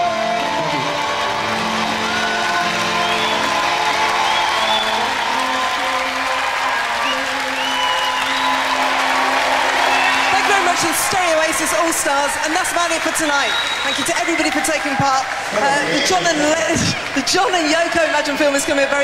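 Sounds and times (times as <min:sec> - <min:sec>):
audience applauding and cheering: 0:00.0 - 0:19.0
whistles from crowd: 0:02.1 - 0:05.6, 0:06.6 - 0:10.7, 0:13.0 - 0:14.4.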